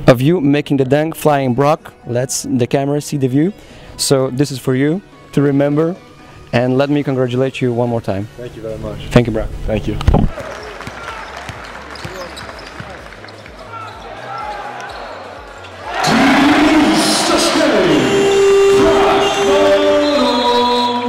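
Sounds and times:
basketball dribbling: 10.3s - 15.1s
crowd noise: 10.3s - 21.0s.

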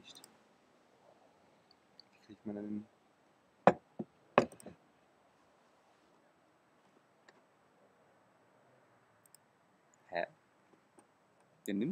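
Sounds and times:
faint steady hiss: 0.0s - 11.9s
small clicks and ticks: 9.2s - 10.1s.

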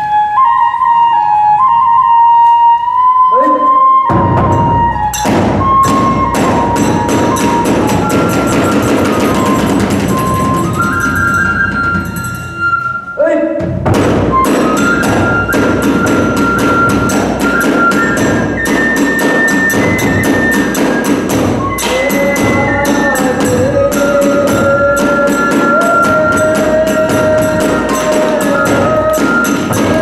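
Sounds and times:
bamboo flute melody: 0.0s - 30.0s
large barrel drum strokes: 4.1s - 12.6s, 13.6s - 30.0s.

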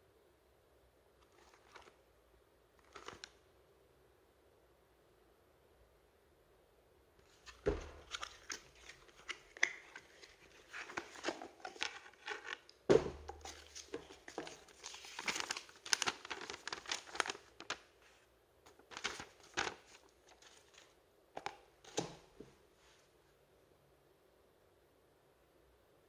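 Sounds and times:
cardboard and paper rustling: 1.2s - 2.0s, 2.8s - 3.3s, 7.3s - 22.2s.

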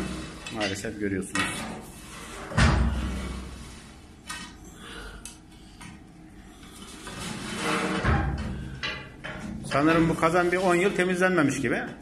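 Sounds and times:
metal knocking and scraping: 0.0s - 4.6s, 6.7s - 11.1s
heavy thud: 2.5s - 3.4s.

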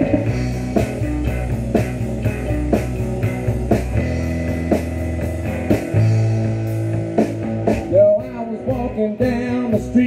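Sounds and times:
drum kit hits: 0.0s - 9.4s
electric guitars: 0.0s - 10.0s.

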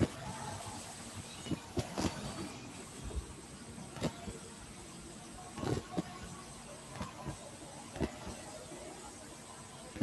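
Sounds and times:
microphone background hiss: 0.0s - 10.0s.

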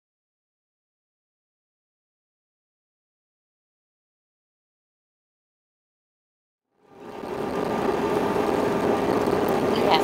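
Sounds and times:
low steady hum: 6.7s - 10.0s.

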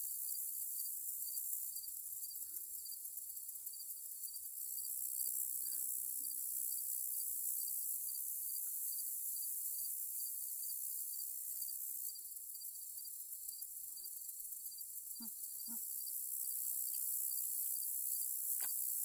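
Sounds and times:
crickets and insects chirping: 0.0s - 19.0s.

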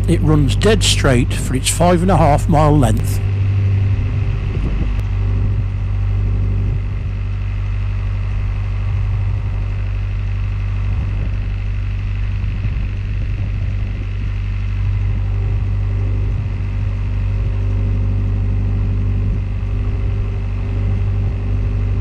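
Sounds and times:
boat diesel engine running: 0.0s - 22.0s.

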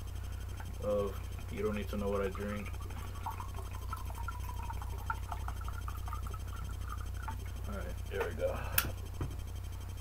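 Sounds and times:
steady low hum: 0.0s - 10.0s
drink pouring into mug: 1.6s - 7.6s.

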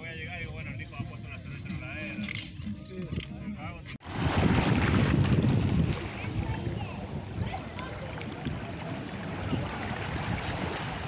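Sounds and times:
small waves lapping on rocks: 4.0s - 11.0s
faint voices: 5.8s - 11.0s.

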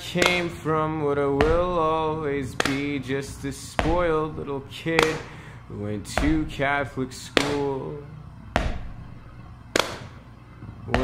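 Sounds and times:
person singing: 0.0s - 8.3s
quiet backing music: 0.0s - 11.0s.

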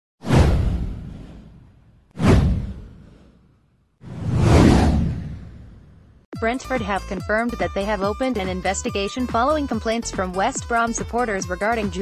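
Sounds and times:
whoosh with deep bass boom: 0.2s - 3.4s, 4.0s - 6.2s.

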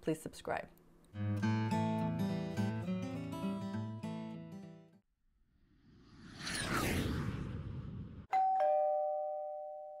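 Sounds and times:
two-note doorbell chime: 8.3s - 10.0s.

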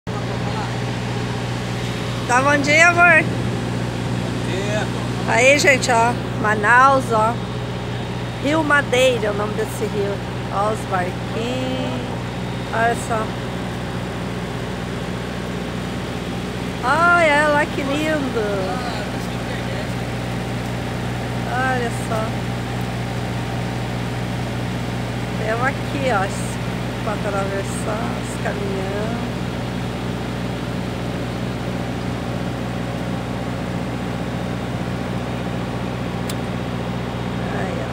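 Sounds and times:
ferry engine drone: 0.0s - 37.9s.

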